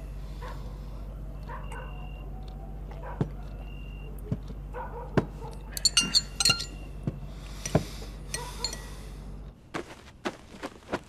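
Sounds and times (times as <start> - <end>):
glassy clinks: 5.7 - 6.9, 7.6 - 8.9
tableware knocking: 5.8 - 6.8.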